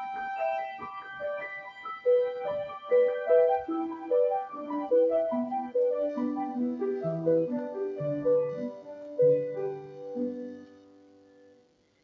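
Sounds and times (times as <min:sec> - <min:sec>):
piano notes: 0:00.0 - 0:11.8.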